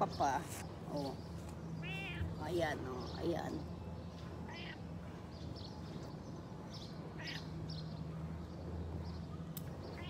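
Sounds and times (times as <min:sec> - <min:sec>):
cat meowing: 0:01.8 - 0:02.3, 0:04.5 - 0:04.8, 0:07.2 - 0:07.5.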